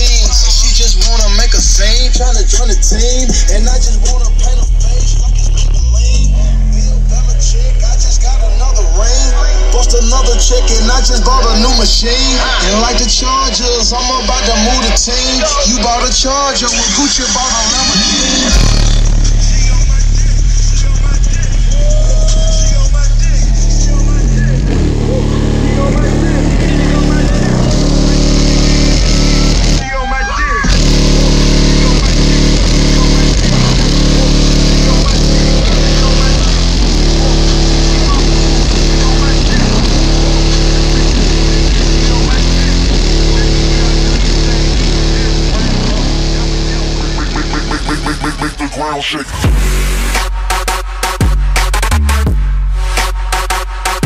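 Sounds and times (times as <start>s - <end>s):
bass-heavy rap music: 0.0s - 54.0s.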